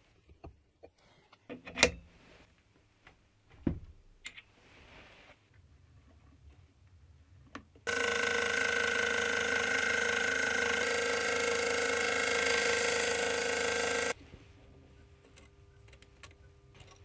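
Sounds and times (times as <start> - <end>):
saw cutting metal whine: 7.9 - 14.2.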